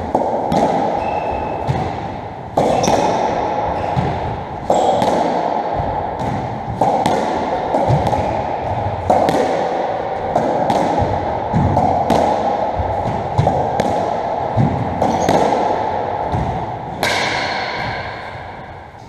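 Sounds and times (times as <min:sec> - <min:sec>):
squash ball impacts echoing: 0:00.0 - 0:19.0
steady background hum: 0:00.0 - 0:19.0.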